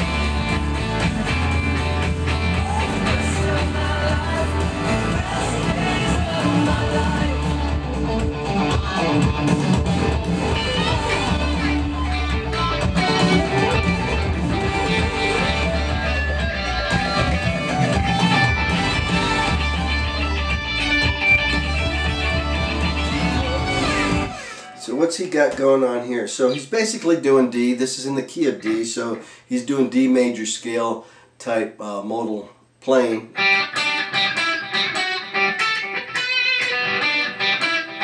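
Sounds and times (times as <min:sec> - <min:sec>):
full band backing track: 0:00.0 - 0:24.4
electric guitar playing: 0:00.0 - 0:25.0, 0:33.3 - 0:38.0.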